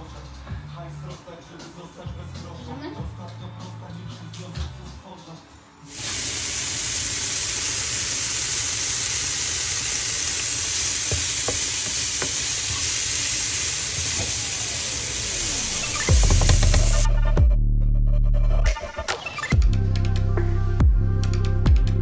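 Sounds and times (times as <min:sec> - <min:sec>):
food sizzling in a frying pan: 0:05.9 - 0:17.1
bass-heavy electronic music: 0:15.4 - 0:22.0.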